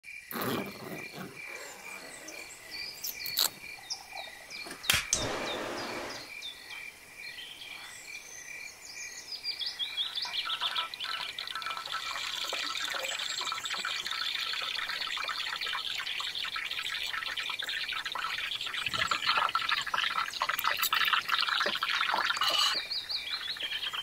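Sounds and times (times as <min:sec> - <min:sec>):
chorus of frogs and insects: 0:00.1 - 0:24.0
birds calling: 0:00.3 - 0:06.6, 0:09.3 - 0:12.5, 0:18.2 - 0:24.0.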